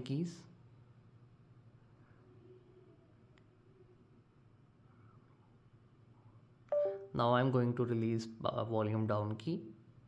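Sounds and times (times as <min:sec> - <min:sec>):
two-note electronic chime: 0:06.7 - 0:07.2.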